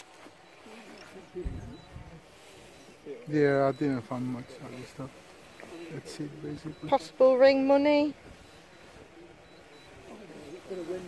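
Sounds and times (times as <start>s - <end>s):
people talking faintly: 0.0s - 11.0s.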